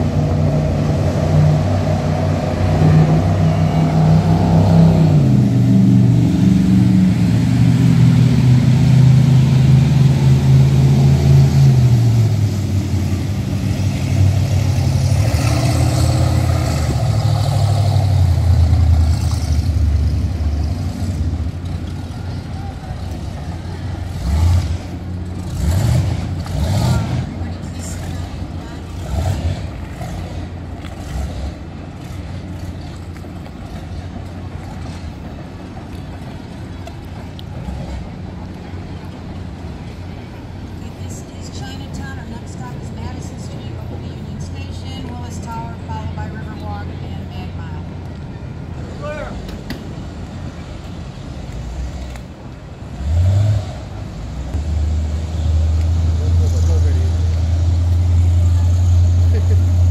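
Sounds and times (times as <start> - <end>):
motorboat engines droning: 0.0 - 59.9.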